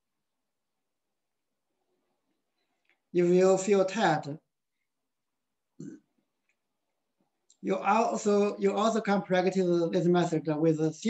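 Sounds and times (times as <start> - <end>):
man's throat sound: 5.8 - 6.1.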